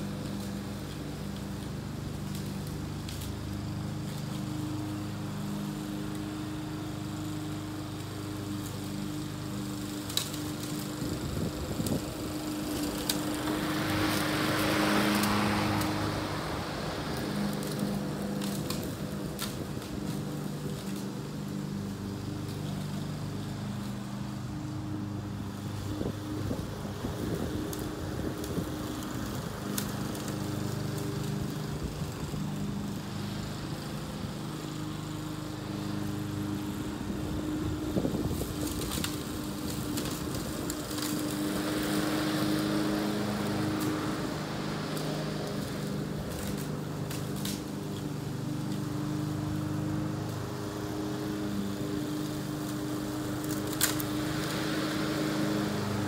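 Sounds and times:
lawn mower engine running: 0.0 - 56.0
broad rushing sound: 11.2 - 20.3.

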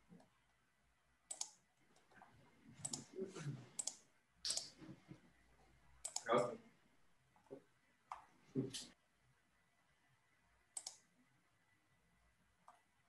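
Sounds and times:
computer mouse clicks: 1.3 - 2.2, 2.8 - 3.1, 3.8 - 4.8, 6.0 - 6.3, 10.7 - 11.1, 12.6 - 12.9.

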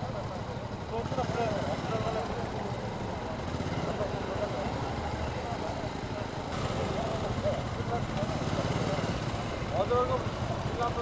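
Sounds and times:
motorcycle engines idling: 0.0 - 11.0
people talking indistinctly: 0.0 - 11.0.

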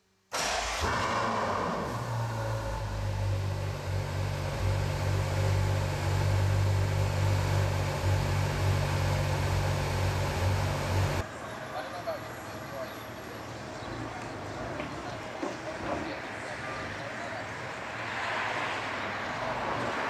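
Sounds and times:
car engine starting and idling: 0.3 - 11.3.

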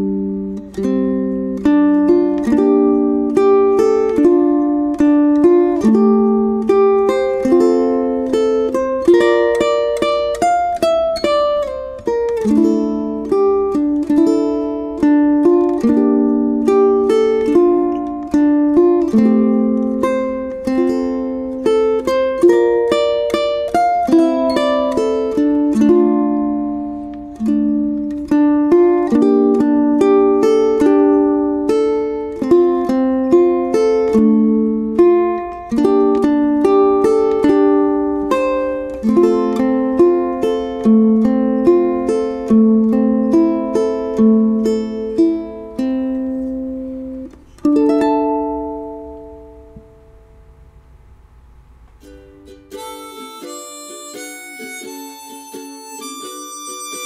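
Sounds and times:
fingerpicked ukulele: 0.0 - 57.0.

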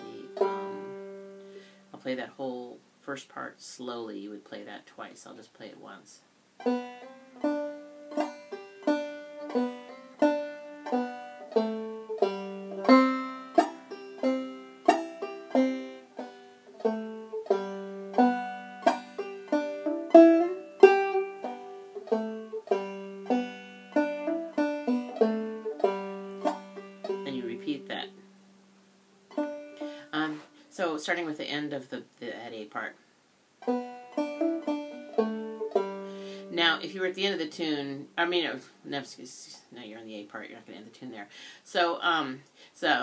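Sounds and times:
banjo picking a slow tune: 0.0 - 2.2, 6.6 - 31.4, 33.6 - 38.6.

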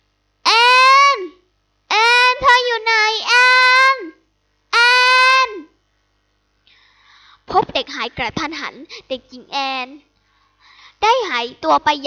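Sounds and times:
girl calling out a name: 0.5 - 4.2, 4.8 - 5.7, 7.5 - 10.0, 11.0 - 12.0.

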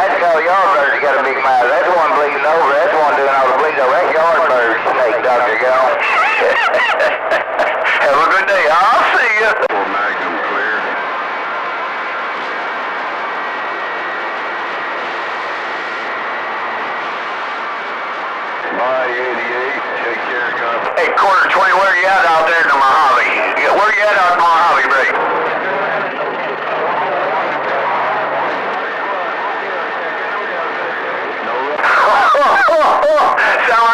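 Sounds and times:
high-pitched warbling radio calls: 0.0 - 33.9.

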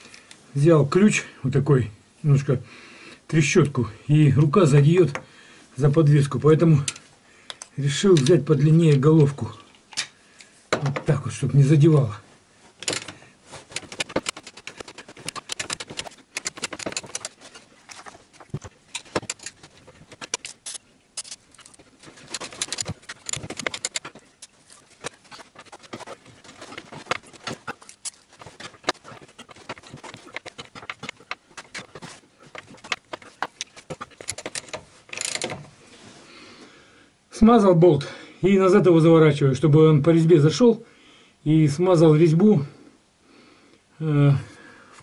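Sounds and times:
metal tools clinking: 12.8 - 18.2, 18.9 - 35.7
ratchet wrench clicking: 34.2 - 35.6.

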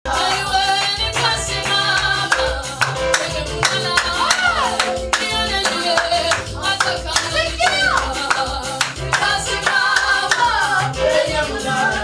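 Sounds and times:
rhythmic hand claps: 0.1 - 12.0
young voices singing gospel: 0.1 - 12.0.

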